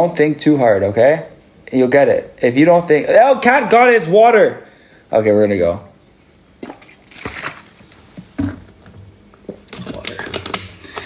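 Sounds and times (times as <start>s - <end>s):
plastic water bottle crackling: 6.6s - 11.0s.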